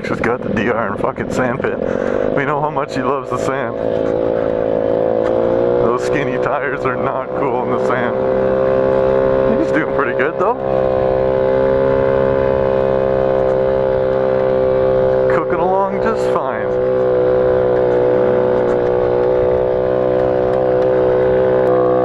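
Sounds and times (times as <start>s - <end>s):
motorcycle engine running: 0.0s - 22.0s.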